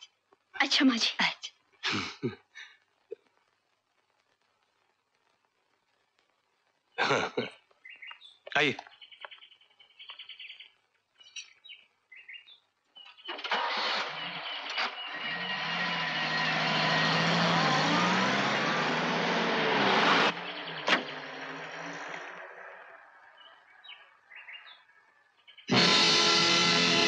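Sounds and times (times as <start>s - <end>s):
birds chirping: 6.9s - 25.8s
jeep engine revving: 13.4s - 22.8s.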